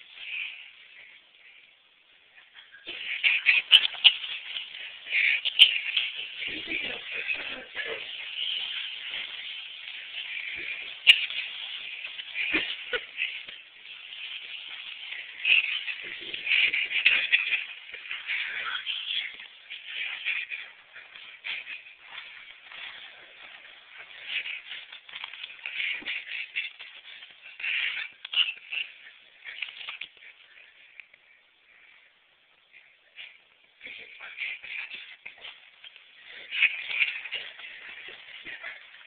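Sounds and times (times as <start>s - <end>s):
blankets and clothing rustling: 0.0s - 39.0s.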